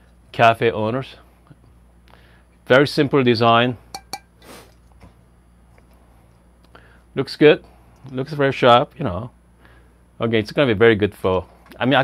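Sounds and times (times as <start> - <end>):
glass clinks: 4.0 - 4.3.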